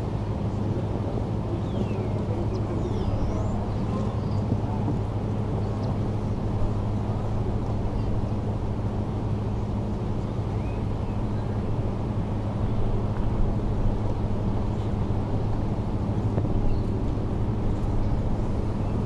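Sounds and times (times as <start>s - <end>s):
low hum and rumble: 0.0s - 19.0s.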